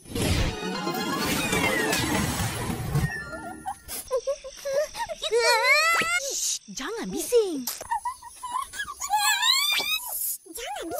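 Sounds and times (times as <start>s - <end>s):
high-pitched voice whimpering: 7.9s - 10.9s.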